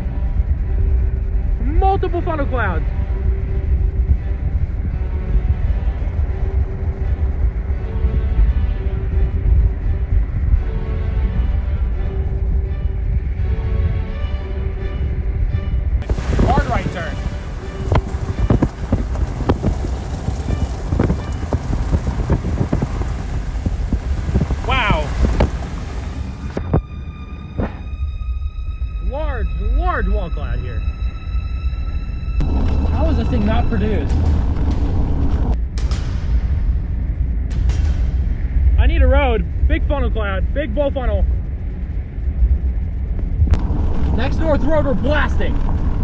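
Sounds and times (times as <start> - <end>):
music: 0.0 - 23.2, 24.6 - 43.4
wind and road noise rumble: 0.0 - 46.0
steady high tone: 26.4 - 34.1.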